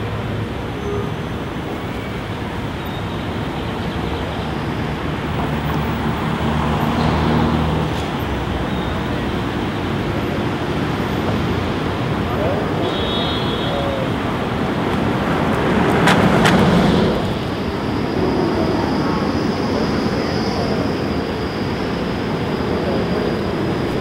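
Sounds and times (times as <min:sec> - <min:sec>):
road traffic passing: 0:00.0 - 0:24.0.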